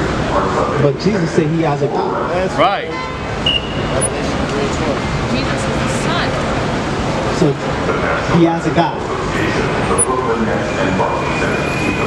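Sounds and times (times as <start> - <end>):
city street traffic: 0.0 - 12.0
crowd chatter: 0.0 - 12.0.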